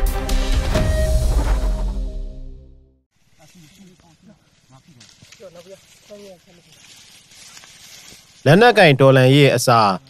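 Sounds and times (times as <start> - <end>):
open-air background hiss: 3.1 - 10.0.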